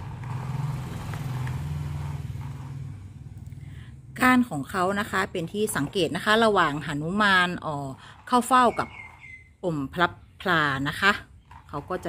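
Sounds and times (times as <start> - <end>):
vehicle engine hum: 0.0 - 9.6.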